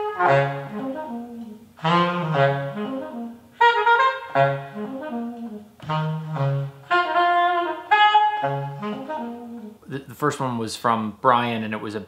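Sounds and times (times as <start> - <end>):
tenor saxophone improvising: 0.0 - 9.9.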